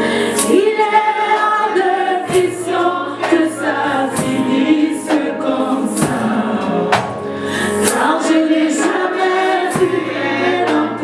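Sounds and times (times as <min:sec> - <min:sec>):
keyboard: 0:00.0 - 0:11.0
woman singing into a microphone: 0:00.0 - 0:11.0
backing singers: 0:00.4 - 0:11.0.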